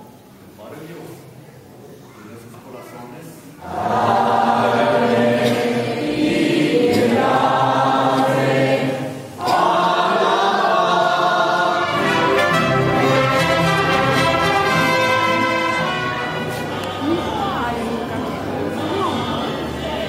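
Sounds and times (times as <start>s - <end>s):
voices singing together: 3.6s - 20.0s
mariachi band playing: 9.6s - 20.0s.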